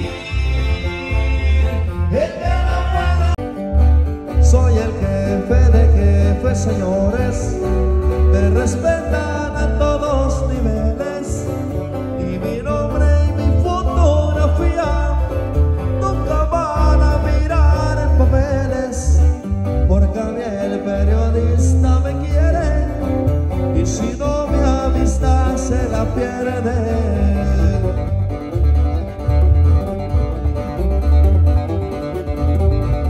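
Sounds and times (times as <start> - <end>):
acoustic guitars strummed and picked: 0.0 - 33.0
heavy pulsing bass line: 0.0 - 33.0.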